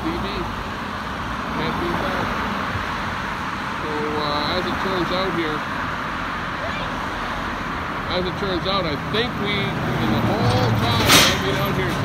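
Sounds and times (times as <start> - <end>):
cars passing on busy street: 0.0 - 12.0.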